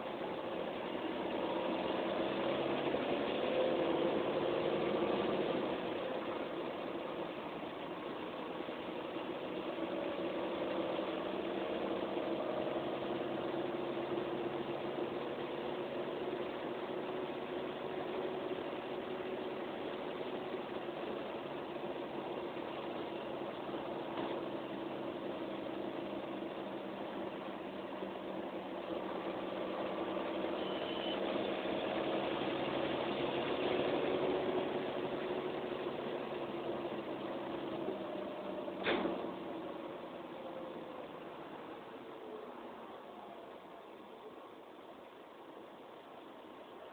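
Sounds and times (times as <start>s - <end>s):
bus diesel engine running: 0.0s - 46.9s.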